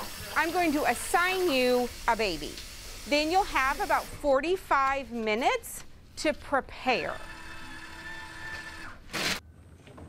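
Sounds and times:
paper towel dispenser motor: 6.9 - 9.4.

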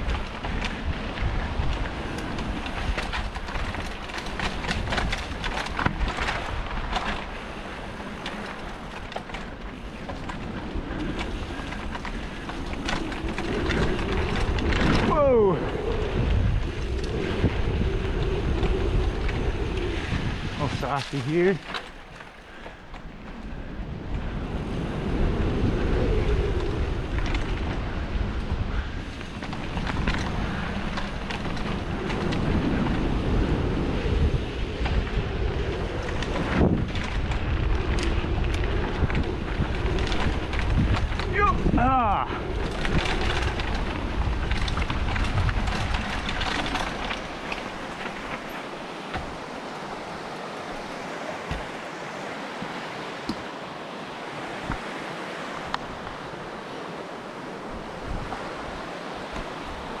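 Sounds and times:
bike tyres rolling over dirt: 0.0 - 60.0
wind buffeting microphone: 0.0 - 60.0
fast-flowing creek rushing: 46.1 - 60.0.

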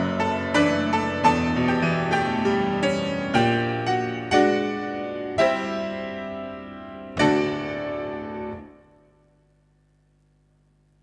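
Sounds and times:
grand piano chords: 0.0 - 9.6.

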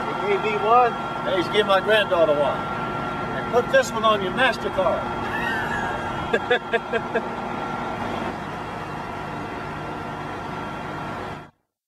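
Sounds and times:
outdoor background noise: 0.0 - 11.6.

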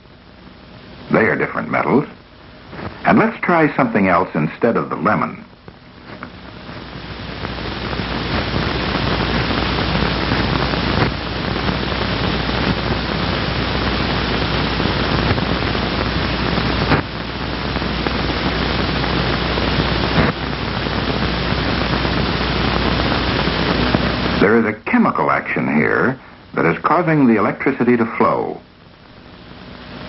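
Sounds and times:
film soundtrack hiss: 0.0 - 30.0
low hum: 0.0 - 30.0.

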